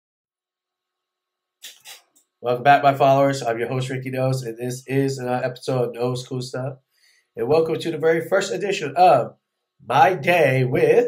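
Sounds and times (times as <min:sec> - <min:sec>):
man sniffing: 0:01.6 - 0:02.1.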